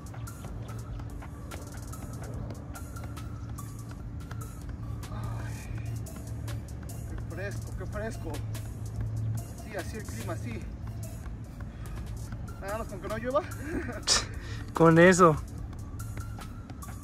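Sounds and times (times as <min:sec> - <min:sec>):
ball kicked with feet: 0:00.0 - 0:04.9
background music: 0:00.0 - 0:17.0.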